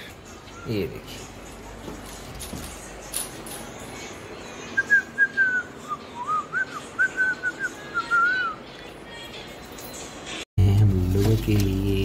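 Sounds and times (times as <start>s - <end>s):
person whistling a tune: 4.8s - 8.6s.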